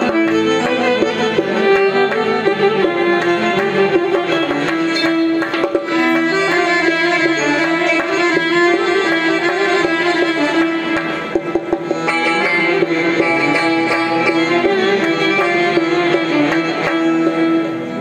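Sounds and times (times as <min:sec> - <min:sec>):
stringed instrument melody: 0:00.0 - 0:18.0.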